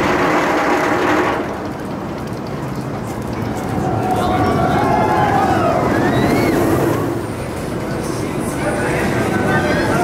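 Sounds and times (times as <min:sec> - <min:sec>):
roller coaster rumbling on track: 0:00.0 - 0:10.0
riders screaming: 0:03.7 - 0:07.1.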